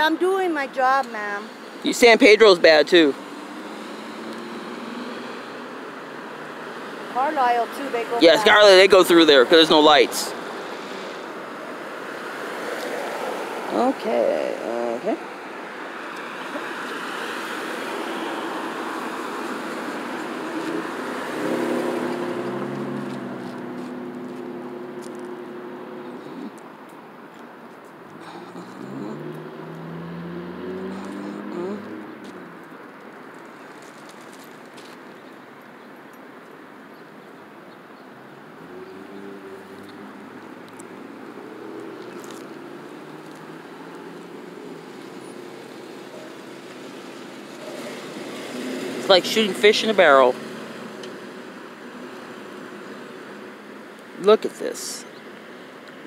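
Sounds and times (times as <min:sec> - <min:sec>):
cars driving past: 0:00.0 - 0:56.0.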